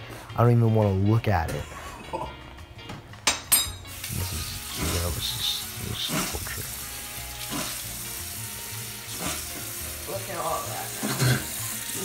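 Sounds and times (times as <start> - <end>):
tap water running into sink: 3.9 - 12.0.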